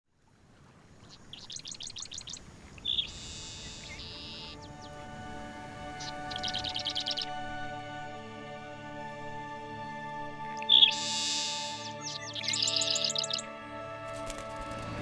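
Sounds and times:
low outdoor hiss: 0.1s - 15.0s
songbirds singing: 0.7s - 15.0s
soft music of held tones: 3.5s - 15.0s.

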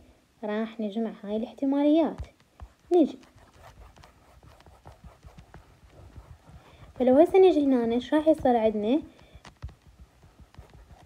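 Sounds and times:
stylus tapping on tablet screen: 2.1s - 11.0s.

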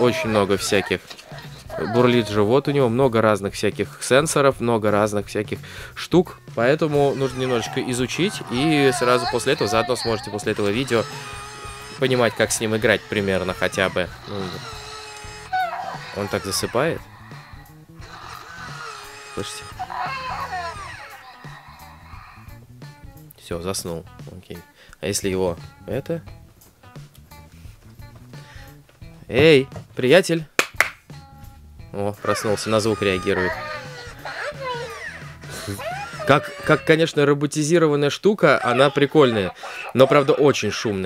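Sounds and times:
toy squeaky gliding call: 6.9s - 22.4s, 32.2s - 37.0s
toy held electronic tone: 7.0s - 16.8s, 18.0s - 21.4s, 32.2s - 36.8s
toy electronic chirps: 8.7s - 16.2s.

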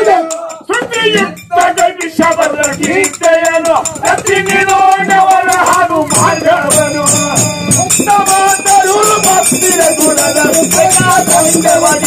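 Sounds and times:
hand cymbals struck rhythmically: 0.0s - 12.0s
men singing folk song: 0.0s - 12.0s.

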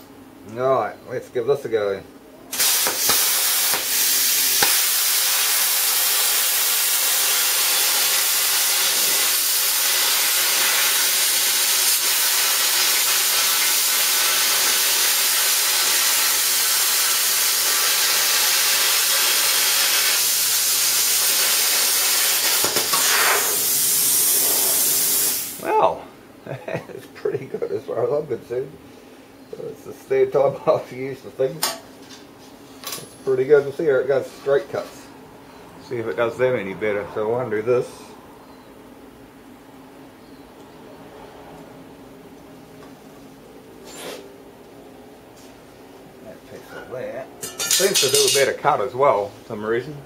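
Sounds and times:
plasma cutter hissing: 2.5s - 25.6s, 47.6s - 48.5s.

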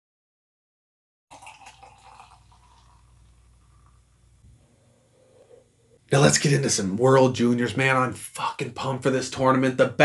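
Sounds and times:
beer pouring into glass: 1.3s - 4.0s.

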